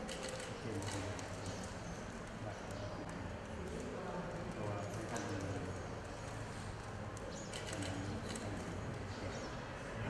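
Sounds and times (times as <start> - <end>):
faint indistinct voices: 0.0 - 10.0.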